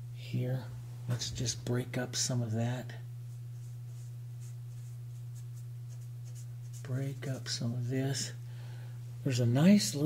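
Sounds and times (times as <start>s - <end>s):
paintbrush scratchy strokes: 3.3s - 7.4s.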